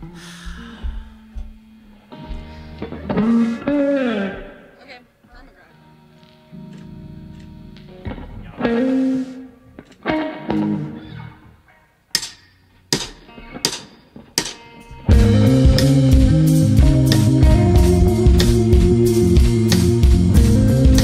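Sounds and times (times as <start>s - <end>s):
electric guitar chords: 0.0s - 11.7s, 13.3s - 21.0s
loud rock band: 15.0s - 21.0s.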